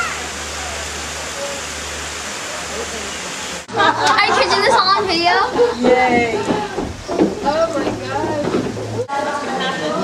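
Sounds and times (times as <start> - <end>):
falling water rushing: 0.0 - 10.0.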